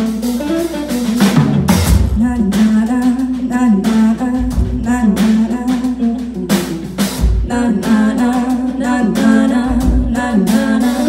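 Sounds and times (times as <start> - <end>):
live band playing: 0.0 - 11.0
voices singing: 2.2 - 11.0.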